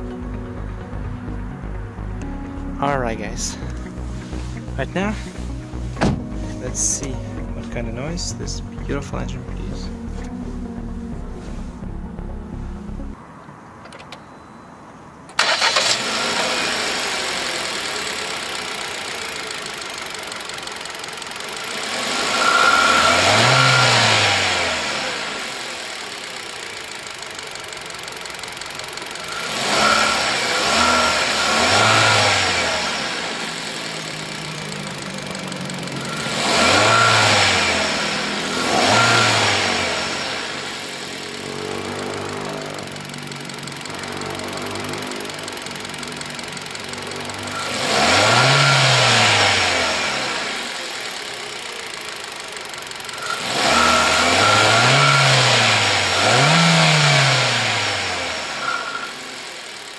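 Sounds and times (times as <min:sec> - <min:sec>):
car engine idling and revving: 0:00.0 - 0:14.2, 0:15.3 - 0:59.9.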